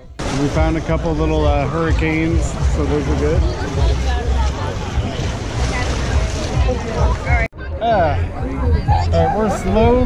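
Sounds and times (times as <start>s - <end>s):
voices of people nearby: 0.0s - 10.0s
wind buffeting microphone: 0.1s - 7.5s.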